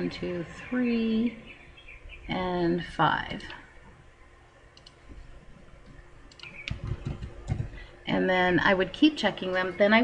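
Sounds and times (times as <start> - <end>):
faint steady hum: 0.0 - 10.0
computer mouse clicks: 4.7 - 5.0, 6.3 - 7.7
keyboard clicks: 4.8 - 5.0, 6.3 - 7.7.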